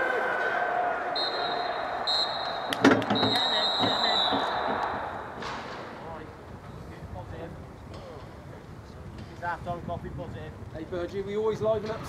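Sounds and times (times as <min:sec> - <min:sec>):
players' voices: 0:00.0 - 0:12.0
referee's whistle blasts: 0:01.1 - 0:05.4.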